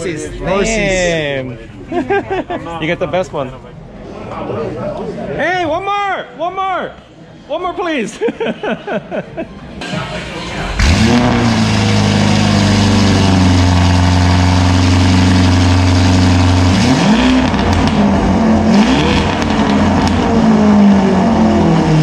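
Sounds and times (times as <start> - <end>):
car engine idling and revving: 9.8 - 22.0.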